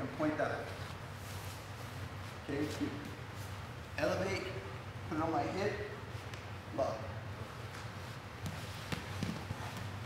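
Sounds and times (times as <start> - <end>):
steady low hum: 0.0 - 10.0
bodies thumping on foam mats: 8.4 - 10.0.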